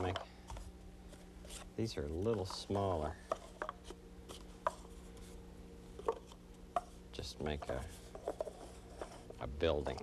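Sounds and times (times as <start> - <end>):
low electrical hum: 0.0 - 10.0
paper cups tapping on table: 2.2 - 4.9, 6.0 - 10.0.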